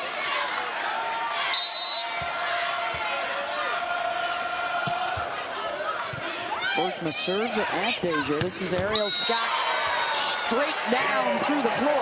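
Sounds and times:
arena crowd chattering: 0:00.0 - 0:12.0
volleyball bouncing on court floor: 0:08.1 - 0:09.3.

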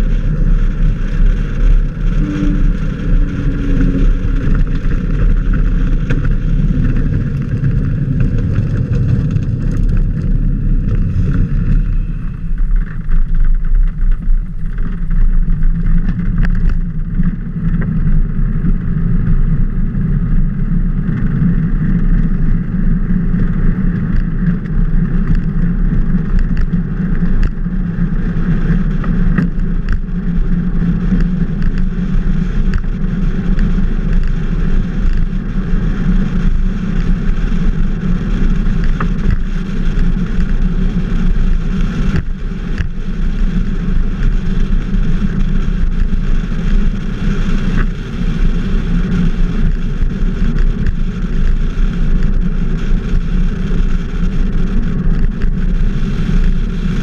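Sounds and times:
road noise rumble: 0:00.0 - 0:57.0
wind noise: 0:00.0 - 0:57.0.

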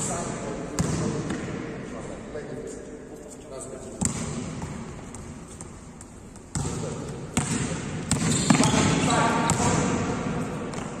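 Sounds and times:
basketball bouncing on court floor: 0:00.7 - 0:01.6, 0:03.9 - 0:11.0.

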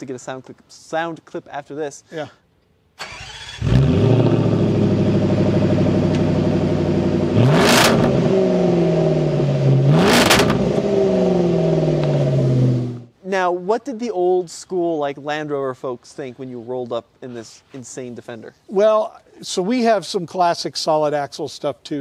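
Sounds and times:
engine cranking and idling: 0:03.0 - 0:06.6
engine revving: 0:03.0 - 0:13.1.

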